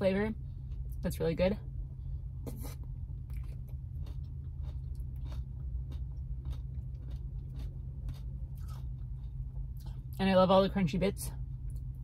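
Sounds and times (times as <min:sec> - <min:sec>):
steady low hum: 0:00.0 - 0:12.0
chewing crunchy food: 0:02.6 - 0:10.2.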